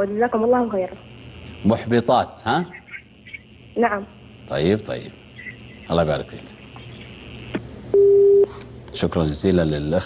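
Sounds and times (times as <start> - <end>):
telephone busy tone beep: 7.9 - 8.5.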